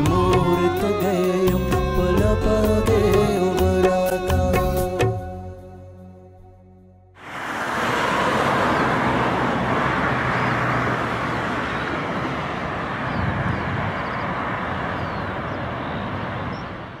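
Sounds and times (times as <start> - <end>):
steady rushing noise: 7.2 - 10.2.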